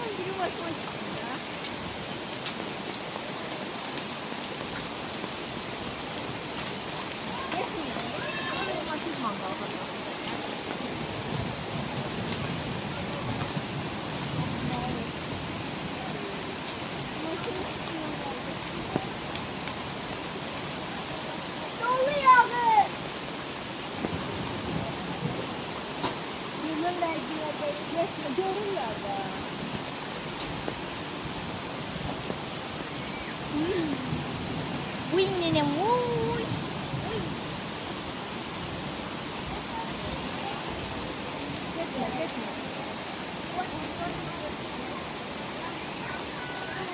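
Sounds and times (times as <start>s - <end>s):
heavy rain on leaves: 0.0s - 46.9s
rushing river: 0.0s - 46.9s.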